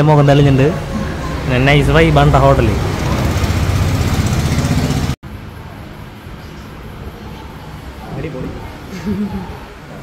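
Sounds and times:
engine running with fast pulse: 2.2 - 5.2.

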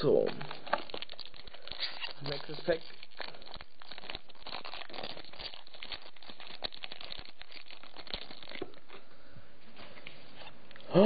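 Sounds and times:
foil wrapper crinkling and tearing: 0.0 - 9.0.

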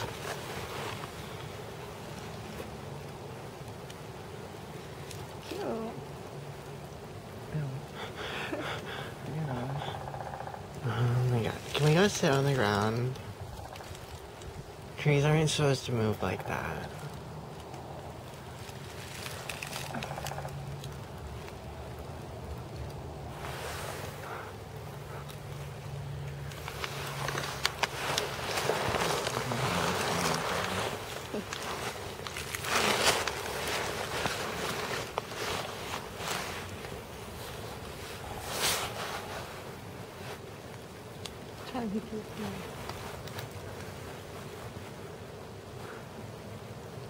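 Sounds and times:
wind gusting through trees: 0.0 - 47.0.

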